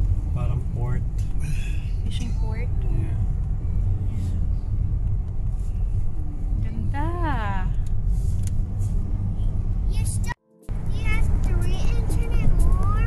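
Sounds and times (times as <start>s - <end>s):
car interior rumble: 0.0s - 13.0s.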